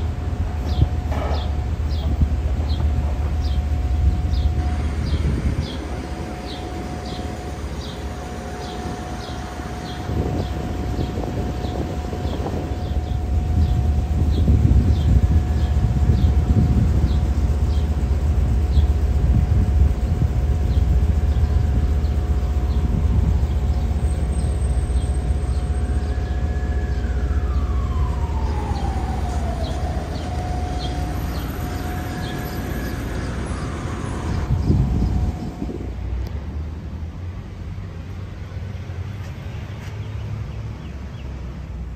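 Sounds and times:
distant siren: 0.0s - 36.3s
street traffic rumbling: 0.0s - 41.9s.

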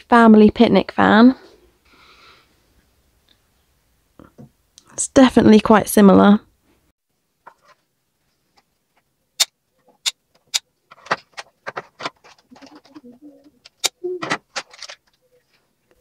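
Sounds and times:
plastic packaging clicking and crinkling: 9.8s - 15.6s.

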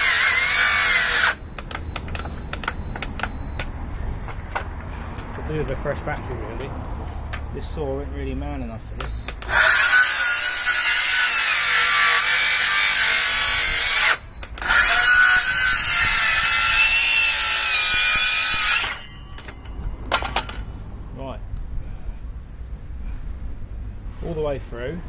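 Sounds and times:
circular saw cutting wood: 0.0s - 1.4s, 9.4s - 19.1s.

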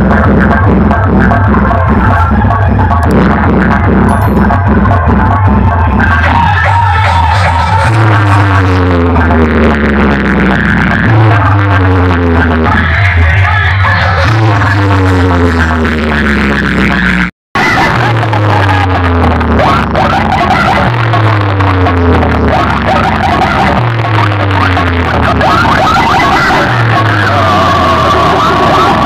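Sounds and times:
loud dance music with heavy bass: 0.0s - 29.0s.

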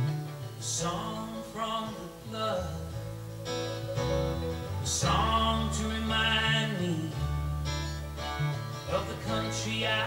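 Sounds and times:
acoustic guitar: 0.0s - 10.0s
sustained low bass notes: 0.0s - 10.0s
person singing: 3.8s - 7.3s, 8.9s - 10.0s.

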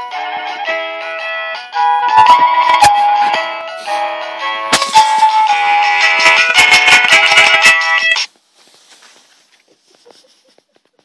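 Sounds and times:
electronic toy melody: 0.0s - 8.3s.

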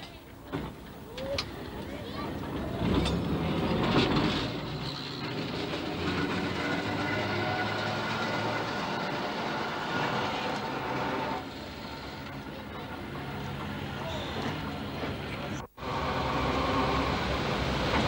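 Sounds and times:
tram rumbling along track: 0.0s - 18.0s
wheels clattering on rails: 0.0s - 18.0s.

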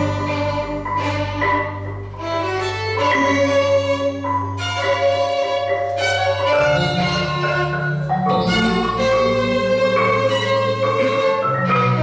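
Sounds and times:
electronic accompaniment: 0.0s - 12.0s
marimba: 0.0s - 12.0s
steady low tone: 0.0s - 12.0s
violin sustained notes: 0.0s - 12.0s.

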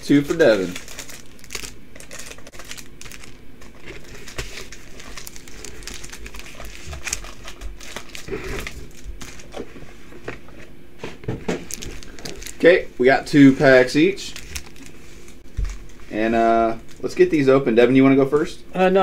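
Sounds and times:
foil packs crinkling: 0.0s - 9.7s, 11.6s - 17.5s.

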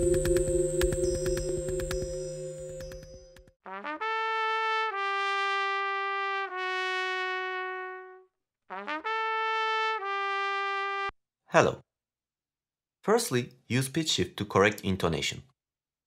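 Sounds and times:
solo trumpet playing: 3.7s - 11.1s.

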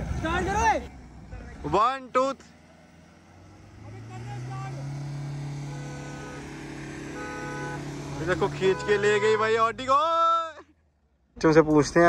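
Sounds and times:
engines revving under load: 0.0s - 11.4s.

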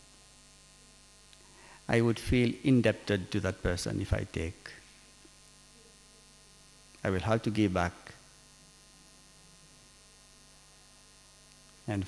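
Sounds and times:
electrical mains hum: 0.0s - 12.0s
man speaking: 1.9s - 4.8s, 7.0s - 8.2s.

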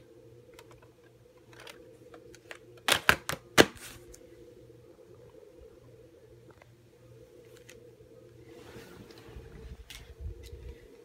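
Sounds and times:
plastic cassette clatter: 1.5s - 3.8s
plastic case snapping shut: 2.8s - 3.8s.

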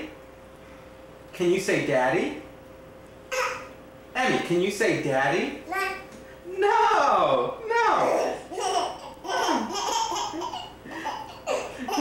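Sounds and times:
baby laughing: 3.3s - 3.7s, 8.0s - 12.0s.

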